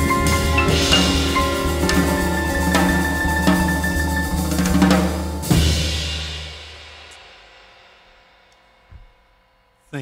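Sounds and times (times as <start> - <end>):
cymbal crash: 0.0 - 3.8
jazz piano trio playing: 0.0 - 6.5.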